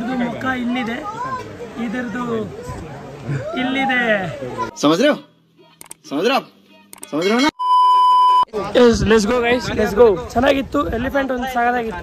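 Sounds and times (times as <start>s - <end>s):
overlapping chatter of people: 0.0s - 7.5s.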